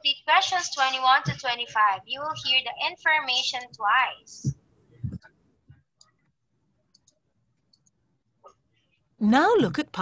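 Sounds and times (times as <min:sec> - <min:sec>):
computer mouse clicks: 0:06.9 - 0:08.0.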